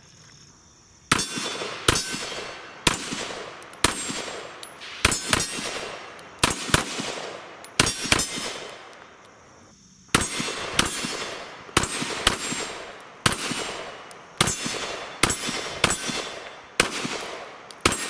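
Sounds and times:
pistol gunshots with echo: 1.1 - 9.0, 10.1 - 18.0.

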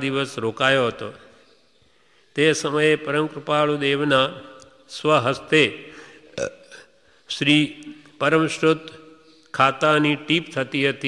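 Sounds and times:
man speaking: 0.0 - 1.4, 2.3 - 11.0.

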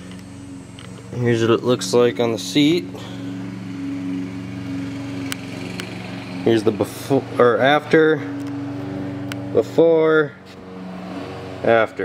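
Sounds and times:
engine droning hum: 0.0 - 12.0.

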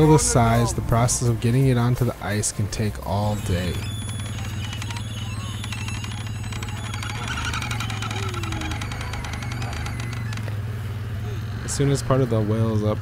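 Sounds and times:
faint voices calling: 0.0 - 13.0
small engine running: 3.1 - 13.0.

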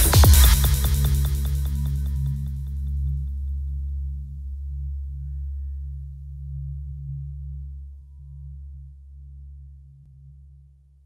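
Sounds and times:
deep bass drone: 0.0 - 10.1.

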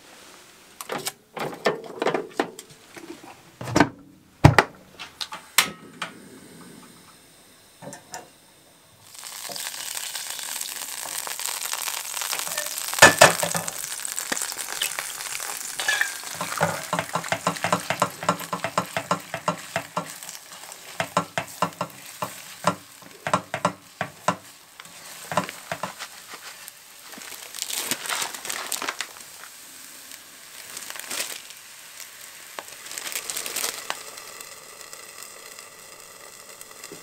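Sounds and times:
eggs sizzling in frying pan: 6.2 - 37.0
spatula scraping pan: 15.7 - 26.1.

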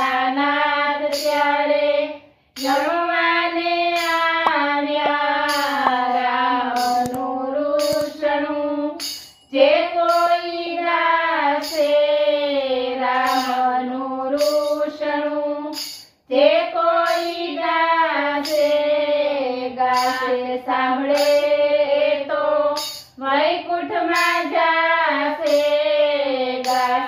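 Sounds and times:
women singing devotional song: 0.0 - 27.0.

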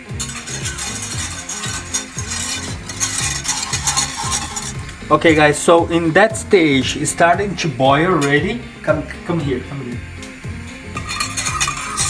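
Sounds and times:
whisk scraping a saucepan: 0.0 - 8.3, 10.8 - 12.0
background music with steady beat: 0.0 - 12.0.

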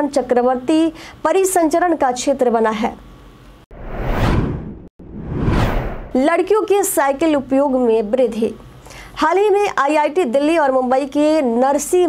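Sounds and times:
whoosh sound effect: 3.7 - 6.2.

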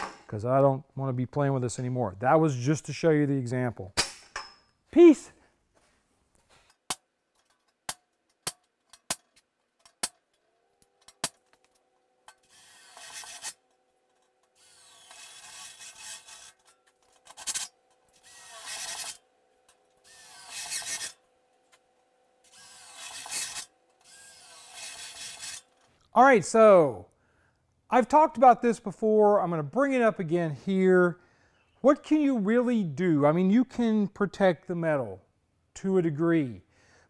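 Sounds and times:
cordless drill cutting steel: 12.3 - 21.3, 22.4 - 25.8.

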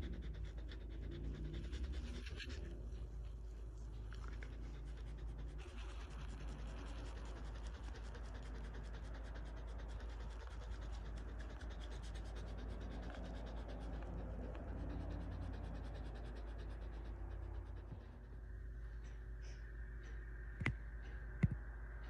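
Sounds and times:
dog panting: 0.0 - 20.1
steady low hum: 0.0 - 22.0.

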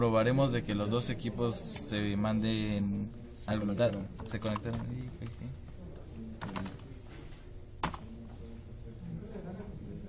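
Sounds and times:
computer keyboard keystrokes: 3.9 - 5.4, 6.4 - 6.9, 7.8 - 8.1.

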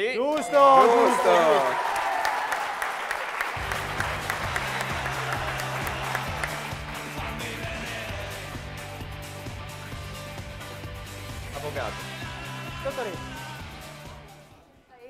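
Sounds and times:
audience applauding: 0.4 - 9.0
background music with bass line: 3.6 - 14.5.

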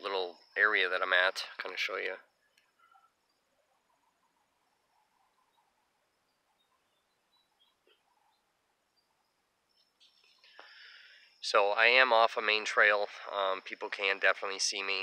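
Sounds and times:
faint outdoor ambience: 0.0 - 15.0
short bird chirps: 2.4 - 11.4.

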